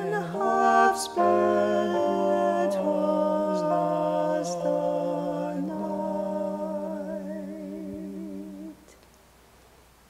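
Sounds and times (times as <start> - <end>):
man and woman singing held note: 0.0 - 9.0.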